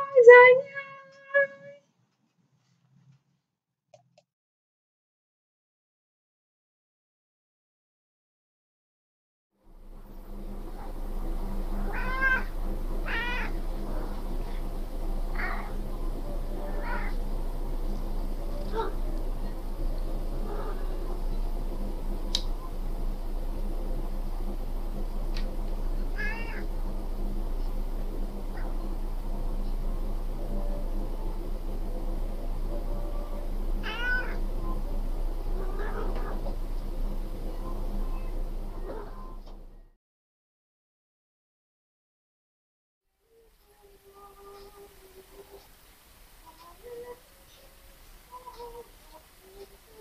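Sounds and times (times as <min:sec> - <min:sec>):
cat meowing: 0:00.0 - 0:01.8, 0:11.8 - 0:13.6, 0:15.3 - 0:15.8, 0:16.6 - 0:17.2, 0:26.2 - 0:26.7, 0:33.8 - 0:34.4, 0:35.6 - 0:36.4
steady low hum: 0:09.6 - 0:40.0
kittens mewing: 0:11.8 - 0:14.2, 0:15.3 - 0:15.8, 0:16.6 - 0:17.2, 0:18.6 - 0:19.1, 0:20.4 - 0:21.2, 0:26.2 - 0:26.7, 0:33.1 - 0:34.4, 0:35.6 - 0:36.5.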